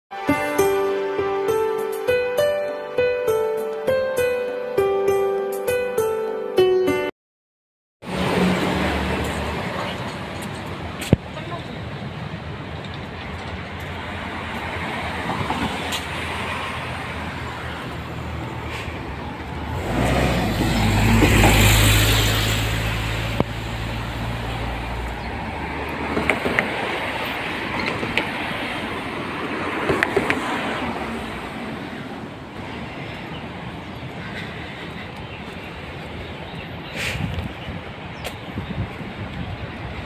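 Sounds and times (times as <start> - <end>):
street traffic road noise: 0.1 - 6.4, 8.0 - 40.0
vehicle passing with deep rumble: 8.0 - 38.0.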